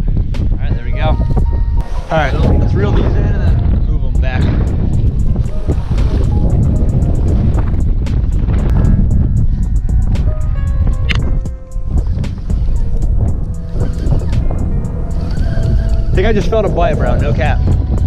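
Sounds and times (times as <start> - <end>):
background music: 0.0 - 18.0
wind buffeting microphone: 0.0 - 18.0.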